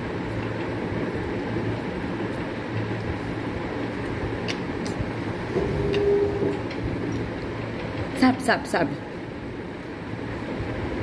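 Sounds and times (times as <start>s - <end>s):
low background hum: 0.0s - 11.0s
steady tone: 5.2s - 7.1s.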